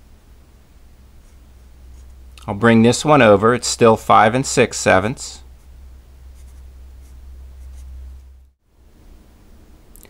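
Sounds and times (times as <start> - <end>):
steady low hum: 0.0 - 10.0
marker pen writing on paper: 6.4 - 8.3.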